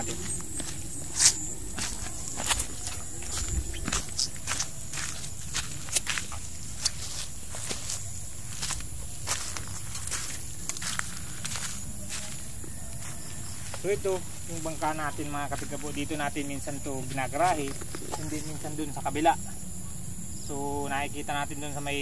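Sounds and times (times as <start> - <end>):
footsteps on sand and grass: 0.0 - 19.4
high-pitched insect trill: 0.0 - 22.0.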